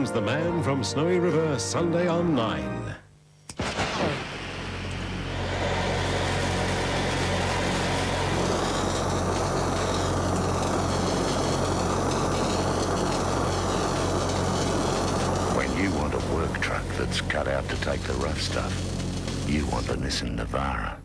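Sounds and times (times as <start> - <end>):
cutting torch roaring hiss: 3.5 - 21.0.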